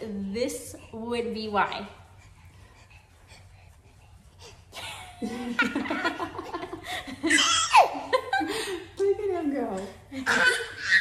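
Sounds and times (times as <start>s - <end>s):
women laughing heartily: 4.8s - 9.0s.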